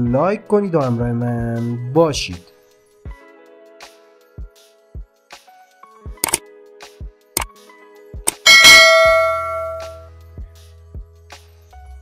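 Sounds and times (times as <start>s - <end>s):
bright bell chime: 8.4s - 10.1s.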